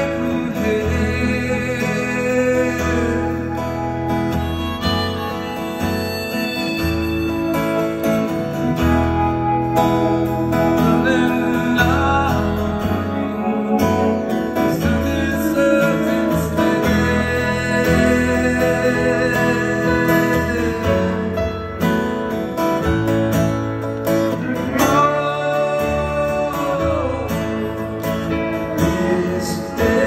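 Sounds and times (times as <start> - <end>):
live band playing slow song: 0.0 - 30.0
melodic lead line: 0.0 - 30.0.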